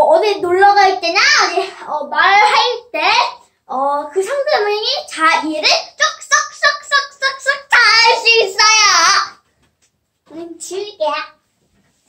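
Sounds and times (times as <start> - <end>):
girl singing: 3.7 - 9.4.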